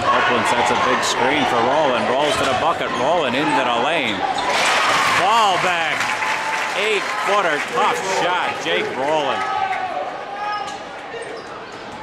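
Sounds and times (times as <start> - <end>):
crowd noise in a gymnasium: 0.0 - 12.0.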